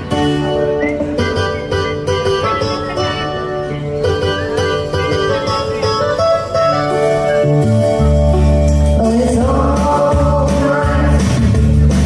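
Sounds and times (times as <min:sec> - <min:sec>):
instrumental backing track: 0:00.0 - 0:12.0
plucked string notes: 0:00.0 - 0:12.0.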